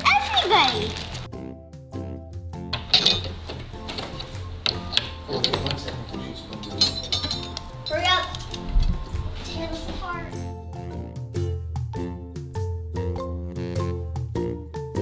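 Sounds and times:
bouncy background music: 0.0 - 15.0
small metal utensils clinking: 2.8 - 8.7.

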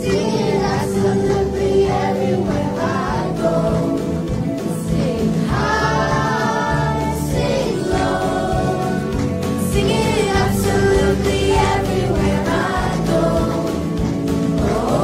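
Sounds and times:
children singing: 0.0 - 15.0
instrumental accompaniment: 0.0 - 15.0.

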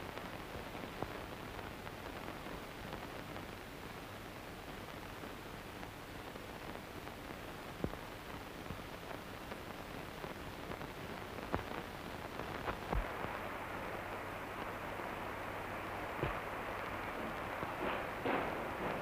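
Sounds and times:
film soundtrack hiss: 0.0 - 19.0.

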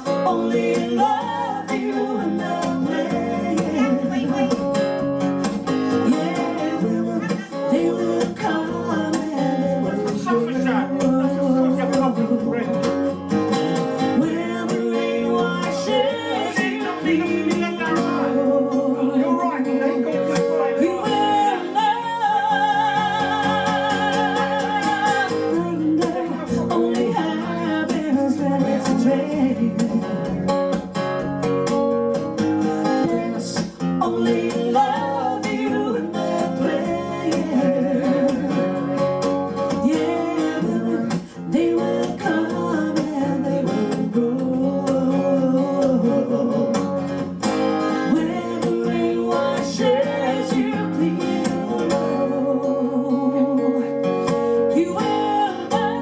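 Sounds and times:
woman singing into a microphone: 0.0 - 30.6, 32.6 - 56.0
strummed acoustic guitar: 0.0 - 56.0.

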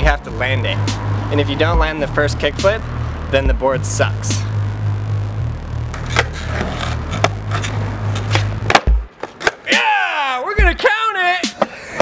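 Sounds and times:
low background music bass: 0.0 - 9.1
skateboard clicks and knocks: 5.9 - 9.8.

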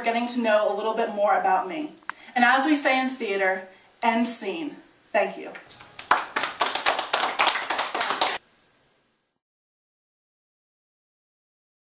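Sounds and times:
hand clapping: 5.7 - 8.4.

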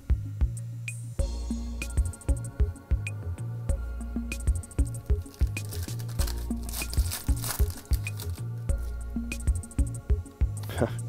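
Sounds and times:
electronic music with steady beat: 0.0 - 11.0
foil wrapper tearing and crinkling: 4.8 - 9.0.

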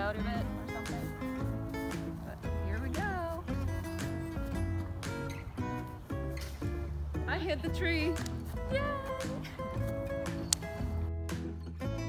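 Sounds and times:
song with singing over a beat: 8.1 - 10.4.

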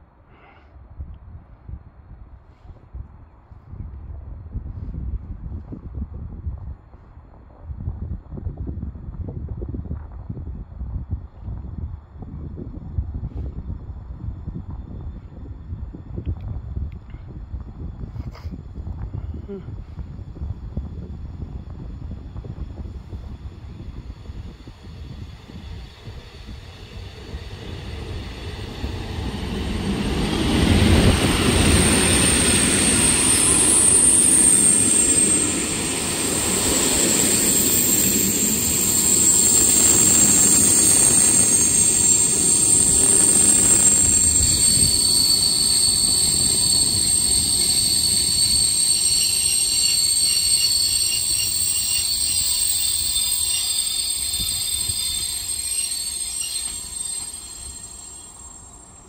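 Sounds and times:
high-pitched train whine: 18.9 - 59.0
train wheels rumbling over rails: 19.8 - 59.0.

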